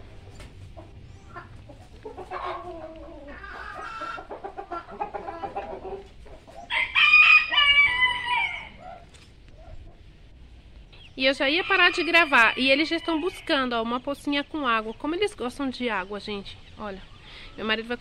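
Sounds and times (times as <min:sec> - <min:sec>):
hens clucking: 0:00.0 - 0:18.0
rooster crowing: 0:06.7 - 0:08.8, 0:11.5 - 0:13.5.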